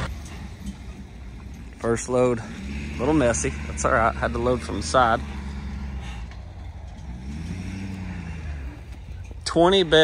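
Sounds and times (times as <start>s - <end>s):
truck engine drone: 0.0s - 10.0s.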